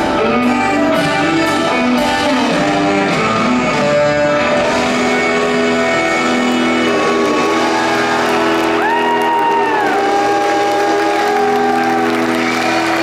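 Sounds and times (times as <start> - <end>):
live rock band playing: 0.0 - 13.0
audience cheering: 6.6 - 13.0.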